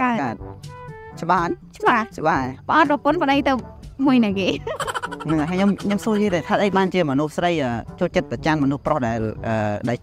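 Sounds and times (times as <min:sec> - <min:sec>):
background music: 0:00.0 - 0:10.0
people talking: 0:01.3 - 0:10.0.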